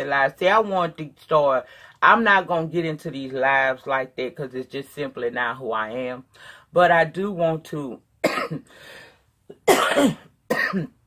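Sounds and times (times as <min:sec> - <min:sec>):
woman coughing: 0:08.2 - 0:08.7, 0:09.5 - 0:11.0.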